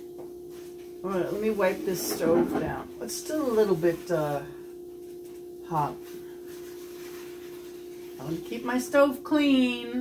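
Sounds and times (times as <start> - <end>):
steady hum: 0.0 - 10.0.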